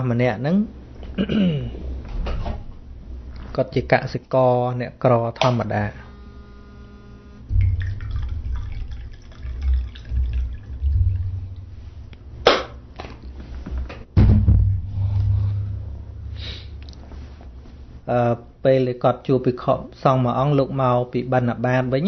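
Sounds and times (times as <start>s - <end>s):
breath puffs on microphone: 14.9s - 17.6s
sharp breath: 16.2s - 16.8s.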